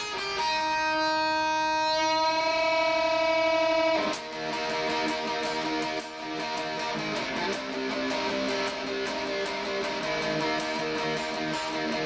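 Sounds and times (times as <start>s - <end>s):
electric guitar chord ringing: 0.0s - 12.0s.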